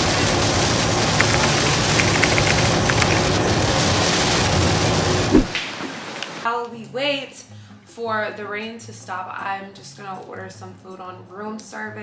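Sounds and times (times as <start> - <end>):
raindrop ticks: 1.2 - 3.4.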